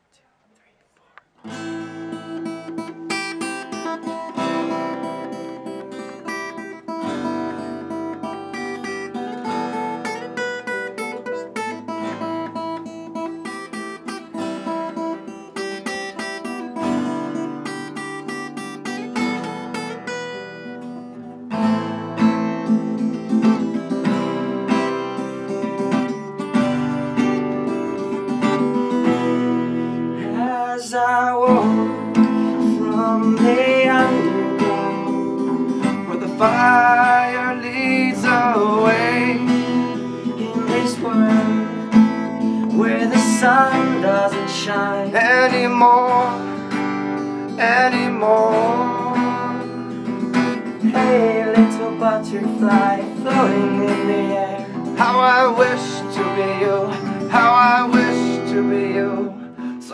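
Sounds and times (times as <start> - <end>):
strummed acoustic guitars: 1.3 - 59.9.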